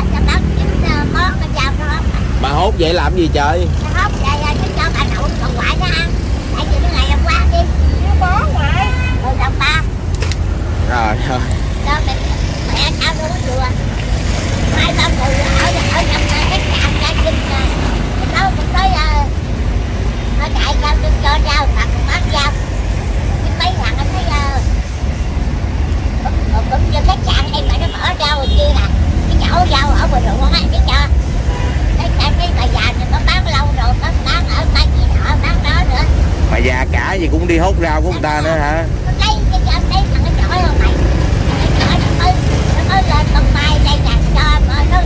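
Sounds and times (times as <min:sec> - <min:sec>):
indistinct talking: 0:00.0 - 0:45.0
motorbikes and trucks passing: 0:00.0 - 0:45.0
road traffic rumble: 0:00.0 - 0:45.0.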